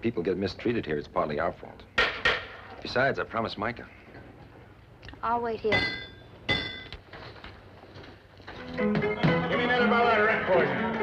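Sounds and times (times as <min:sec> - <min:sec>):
hammer striking iron: 0:05.7 - 0:06.9.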